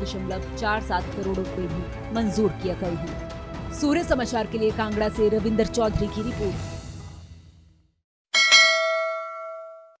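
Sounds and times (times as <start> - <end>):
bright bell-like chime: 8.4 - 10.0.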